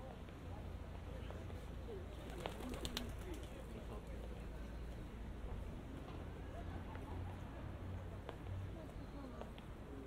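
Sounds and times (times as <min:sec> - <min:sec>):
street ambience: 0:00.0 - 0:10.0.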